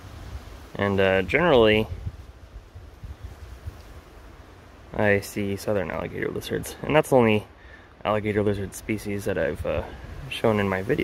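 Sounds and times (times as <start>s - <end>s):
wind buffeting microphone: 0.0s - 4.4s, 8.2s - 11.0s.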